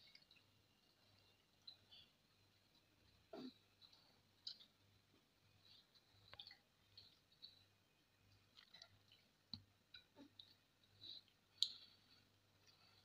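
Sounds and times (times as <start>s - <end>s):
children eating by hand: 0.0s - 13.0s.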